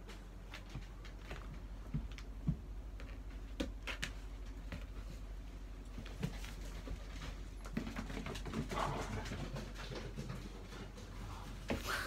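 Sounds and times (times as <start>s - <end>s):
dogs moving on hard floor: 5.9s - 12.0s.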